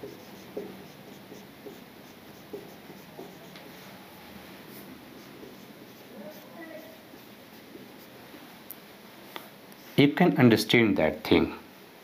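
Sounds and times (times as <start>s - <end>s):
marker pen writing on whiteboard: 0.0s - 4.0s, 4.7s - 8.2s.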